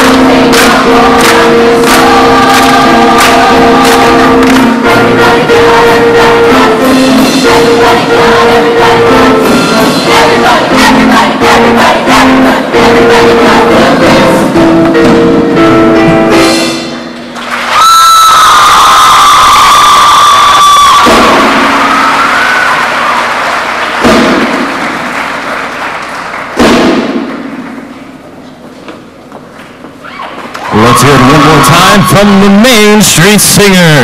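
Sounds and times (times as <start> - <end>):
audience applauding and cheering: 0.0 - 5.1, 17.3 - 26.6, 30.1 - 33.0
man's voice over a pa: 30.8 - 34.0.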